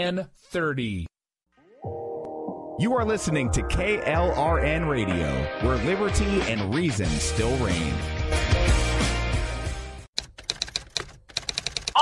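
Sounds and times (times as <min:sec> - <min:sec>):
typewriter keystrokes: 0:10.2 - 0:12.0.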